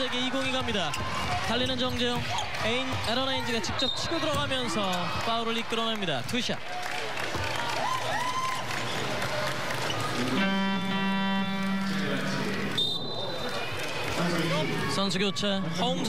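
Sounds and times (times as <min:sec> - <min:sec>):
arena crowd noise: 0:00.0 - 0:16.0
loud buzzer-like horn: 0:10.2 - 0:12.4.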